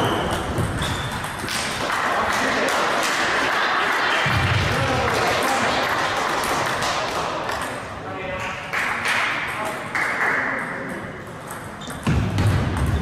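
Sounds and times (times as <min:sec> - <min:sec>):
voices in a hall: 0:01.7 - 0:12.0.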